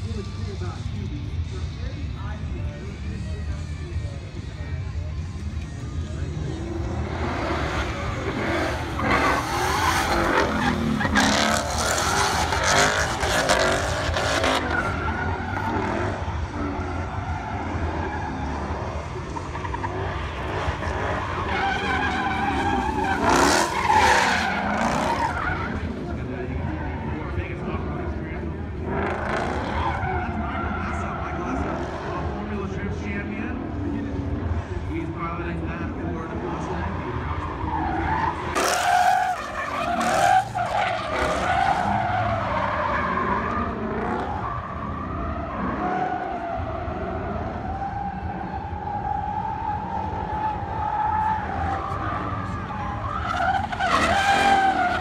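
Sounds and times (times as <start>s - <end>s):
high-revving car engines: 0.0s - 55.0s
tyres squealing and skidding: 6.3s - 34.5s, 36.2s - 55.0s.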